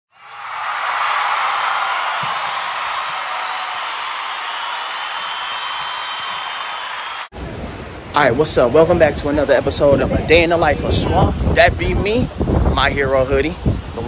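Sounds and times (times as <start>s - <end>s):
applause-like noise rush: 0.1s - 7.4s
wind on phone microphone: 7.4s - 14.0s.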